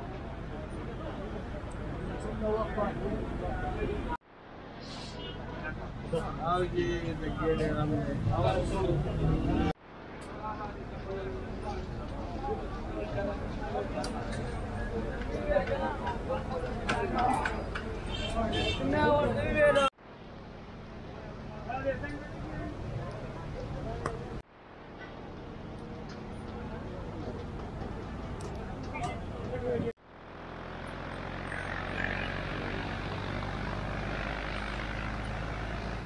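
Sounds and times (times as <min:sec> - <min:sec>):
street food stall roar: 0:04.7 - 0:36.0
people talking: 0:04.8 - 0:19.9, 0:21.0 - 0:24.4, 0:25.8 - 0:29.9.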